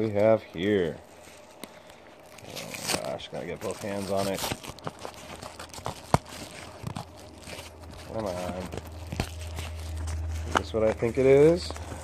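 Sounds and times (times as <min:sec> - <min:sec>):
cardboard box rustling and scraping: 0:02.4 - 0:12.0.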